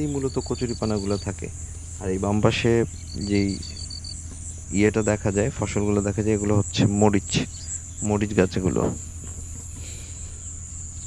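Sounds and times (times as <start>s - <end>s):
man speaking: 0.0s - 3.8s, 4.7s - 9.0s
crickets chirping: 0.0s - 11.0s
high insect hiss: 0.0s - 11.0s.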